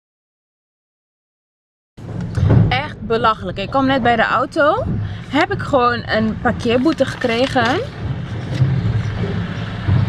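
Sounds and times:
car cabin rumble: 0:02.0 - 0:10.0.

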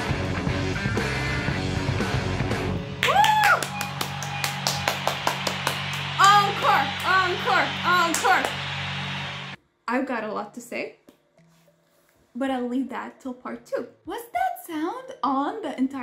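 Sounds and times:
rock music: 0:00.0 - 0:09.6
woman clapping: 0:03.0 - 0:09.6.

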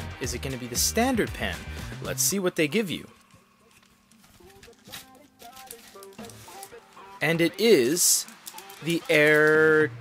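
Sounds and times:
faint background music: 0:00.0 - 0:10.0
plastic wrapping rustling: 0:03.1 - 0:09.9.

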